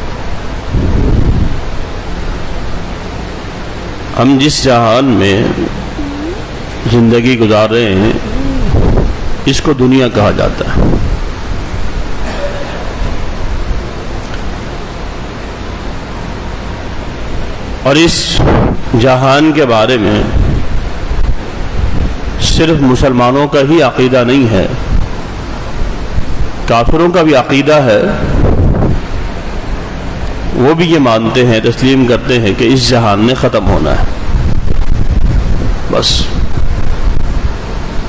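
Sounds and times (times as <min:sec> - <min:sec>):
microphone hiss with low rumble: 0:00.0 - 0:38.0
steady rushing noise: 0:00.0 - 0:38.0
man's voice: 0:06.9 - 0:08.5.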